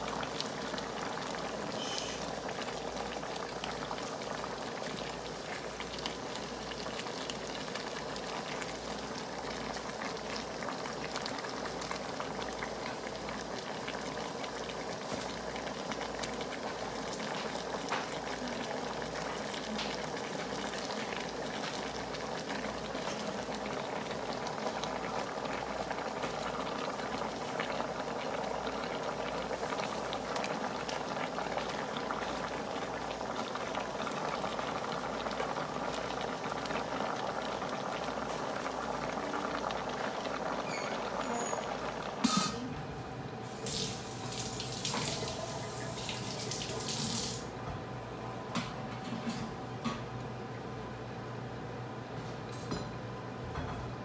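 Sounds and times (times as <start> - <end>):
stew bubbling and crackling: 0.0 - 47.6.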